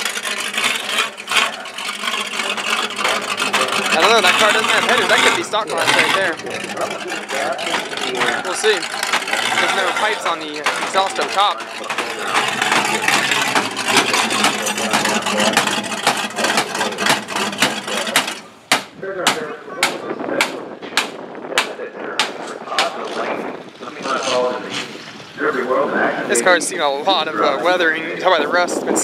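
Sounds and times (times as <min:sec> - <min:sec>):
loud car engine without exhaust: 0:00.0 - 0:21.5
sharp engine knocks: 0:00.0 - 0:23.0.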